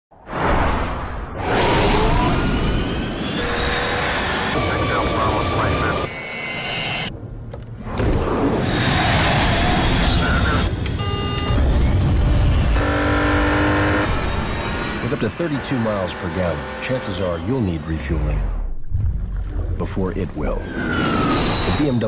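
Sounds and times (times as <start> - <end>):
humming tone with overtones: 3.3 - 5.0
jet aircraft engines: 4.0 - 12.8
car driving at speed: 11.0 - 17.5.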